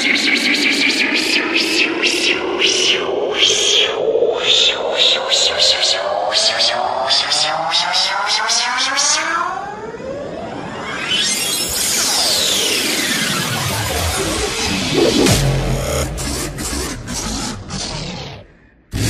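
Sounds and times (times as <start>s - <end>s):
synthesizer tones sweeping upward: 9.4s - 17.1s
sharp noisy percussion hits: 14.5s - 17.5s.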